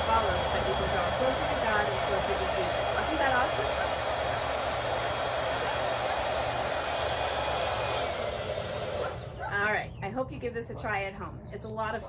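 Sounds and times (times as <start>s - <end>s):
hair dryer blowing: 0.0s - 9.6s.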